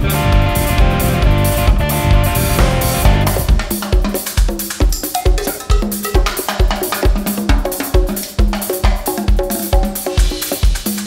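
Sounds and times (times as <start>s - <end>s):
bass notes: 0.0s - 3.8s
live band playing reggae groove: 0.0s - 11.0s
kick drum: 2.5s - 5.0s.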